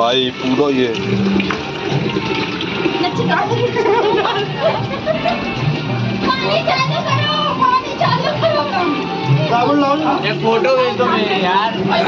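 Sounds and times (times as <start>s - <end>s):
water running and splashing: 0.0s - 12.0s.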